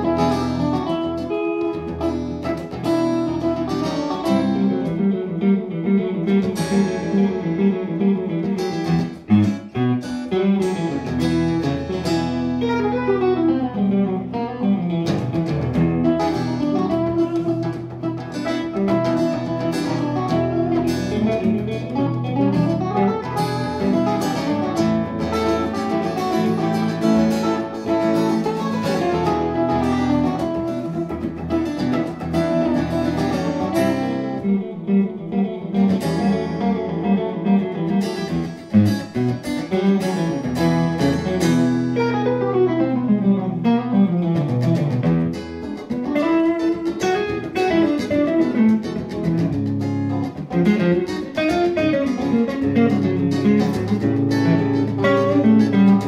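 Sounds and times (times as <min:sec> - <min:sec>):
jazz-rock guitar trio: 0:00.0 - 0:56.0.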